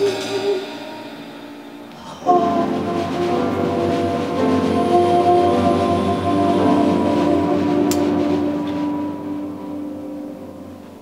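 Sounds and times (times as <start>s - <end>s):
alto saxophone: 0.0s - 10.4s
jazz band holding chords: 0.0s - 11.0s
double bass: 1.8s - 10.5s
bowed cello: 1.9s - 10.5s.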